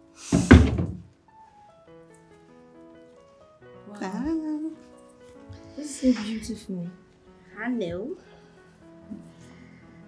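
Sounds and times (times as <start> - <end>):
soft background music: 0.0 - 10.0
thump with rushing noise: 0.3 - 1.1.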